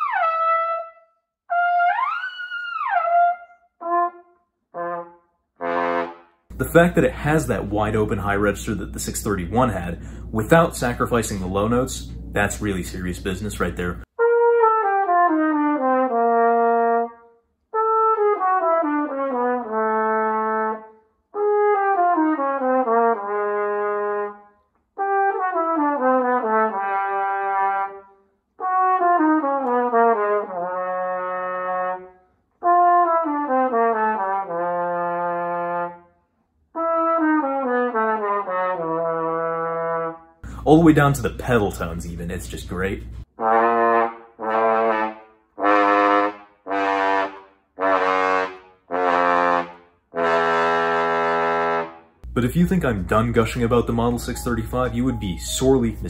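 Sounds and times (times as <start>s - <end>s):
flugelhorn playing descending runs: 0.0s - 36.0s, 36.8s - 56.0s.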